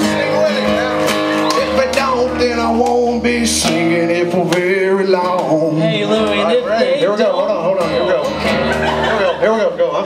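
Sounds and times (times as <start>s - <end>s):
man singing: 0.0s - 10.0s
strummed guitar: 0.0s - 10.0s.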